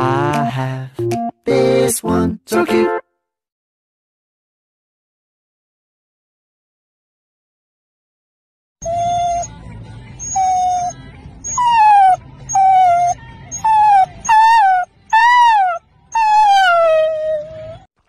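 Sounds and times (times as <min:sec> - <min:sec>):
puppy howling: 0:08.8 - 0:09.6, 0:10.2 - 0:17.9.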